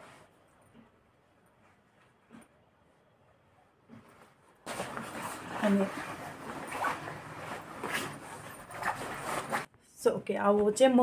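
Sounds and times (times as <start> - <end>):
nylon jacket rustling: 4.1 - 9.7
woman's voice: 5.6 - 6.1, 9.9 - 11.0.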